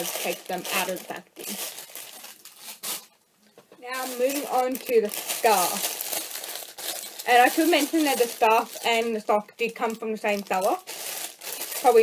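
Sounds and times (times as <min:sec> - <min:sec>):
plastic packaging crinkling: 0:00.0 - 0:03.2, 0:03.8 - 0:12.0.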